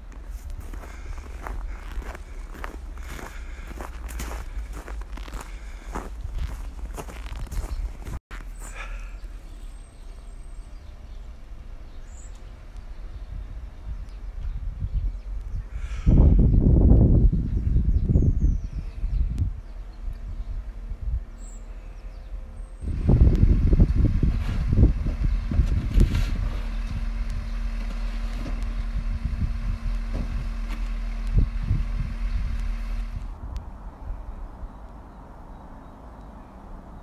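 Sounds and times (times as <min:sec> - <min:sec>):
low rumbles: 0:00.0 - 0:37.0
aerial lift motor humming: 0:19.0 - 0:33.7.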